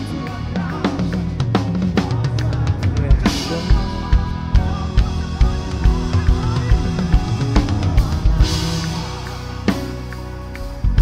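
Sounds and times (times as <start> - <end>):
heavy bass drum beats: 0.0 - 11.0
steady bass line: 0.0 - 11.0.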